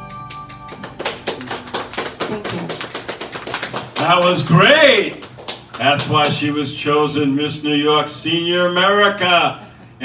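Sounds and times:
song backing track chord: 0.0 - 1.9
uneven hand clapping: 0.1 - 4.3.

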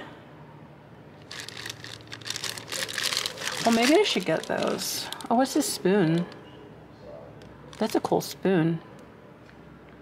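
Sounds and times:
plastic bag crinkling: 1.2 - 6.4, 7.7 - 8.1.

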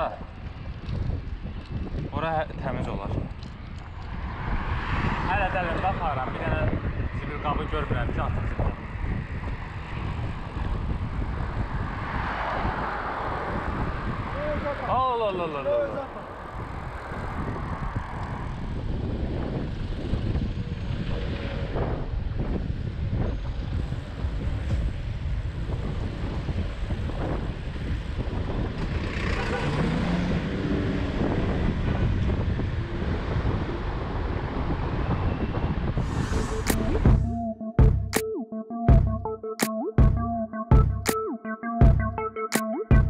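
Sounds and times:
wind rushing over microphone: 0.0 - 37.3
road traffic: 0.0 - 37.4.

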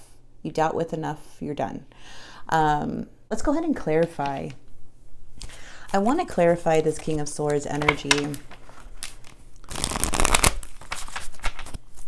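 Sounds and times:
cards being shuffled: 5.4 - 12.0.

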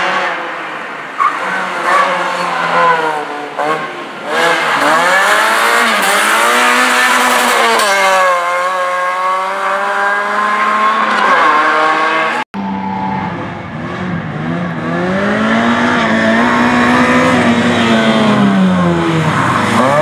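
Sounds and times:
rally car engine revving: 1.2 - 20.0.

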